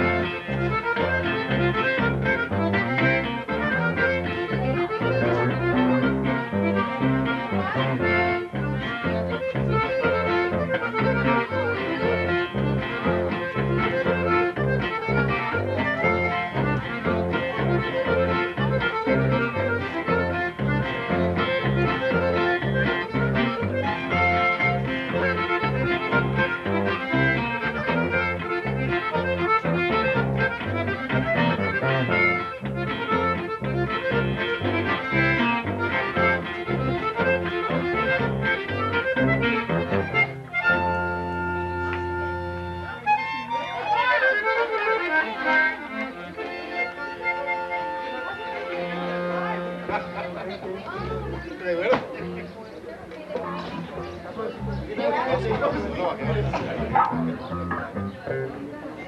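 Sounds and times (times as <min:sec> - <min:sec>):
button accordion tune: 0:00.0 - 0:59.0
twelve-string guitar strumming: 0:00.0 - 0:59.0.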